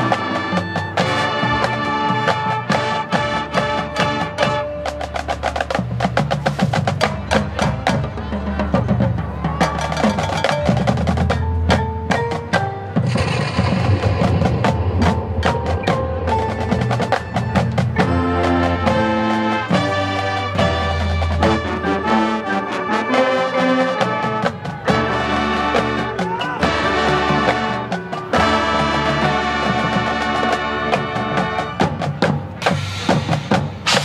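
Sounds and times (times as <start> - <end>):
marching band playing: 0.0 - 34.0
wind instruments: 0.0 - 34.0
mallet and drum strikes: 10.2 - 19.0.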